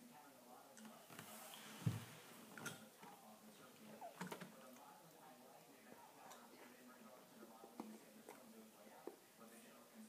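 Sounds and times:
soft thump: 1.8s - 2.1s.

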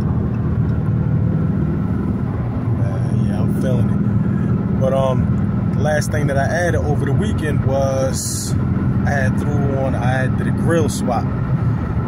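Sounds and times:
car engine and road noise drone: 0.0s - 12.0s.

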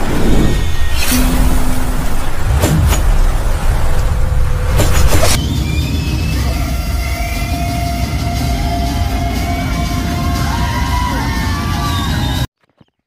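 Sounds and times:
sustained tones: 0.0s - 4.8s
sharp cinematic hits: 0.0s - 6.0s
deep cinematic rumble: 0.0s - 7.4s.

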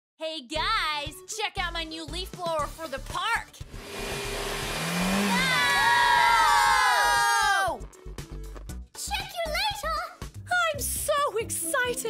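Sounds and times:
leaf blower blasting air: 3.6s - 7.5s
characters yelling: 5.3s - 7.8s.

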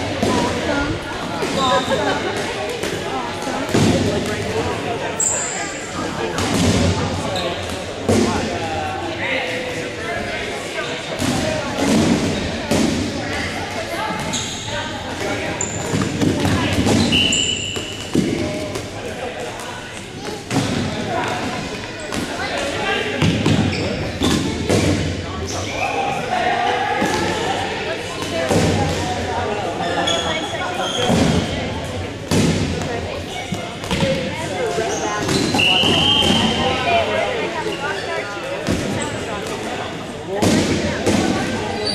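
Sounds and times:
people talking: 0.0s - 41.9s
players' voices: 0.0s - 41.9s.

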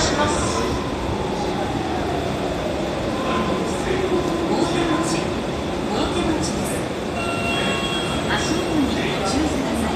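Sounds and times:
train low rumble: 0.0s - 9.9s.

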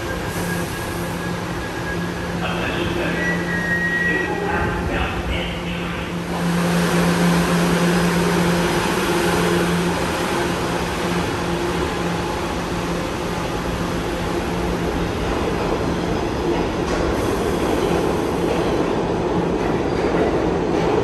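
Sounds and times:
train wheel and rail noise: 0.0s - 21.0s.

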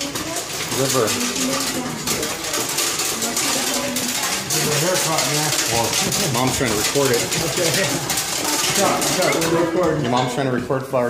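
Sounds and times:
corn sheller rattling and clicking: 0.0s - 10.8s.

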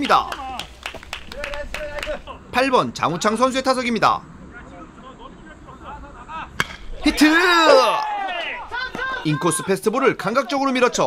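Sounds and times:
bat cracking against baseball: 6.6s - 7.2s.

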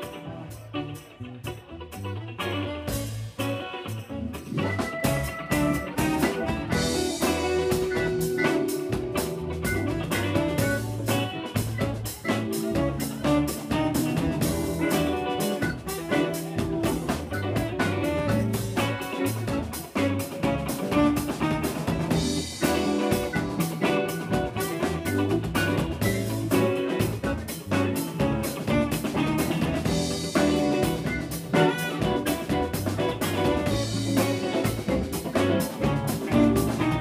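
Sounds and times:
live blues-rock band: 0.0s - 37.0s
saxophone: 0.0s - 37.0s.

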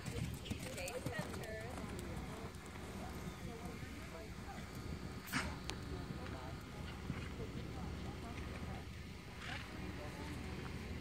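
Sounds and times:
horse hoofbeats on dirt: 0.0s - 4.9s
voices talking: 0.0s - 11.0s.

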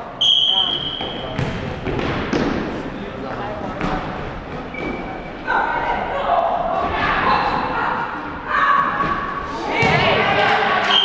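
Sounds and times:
players calling out in gymnasium: 0.0s - 1.5s, 4.8s - 11.0s.

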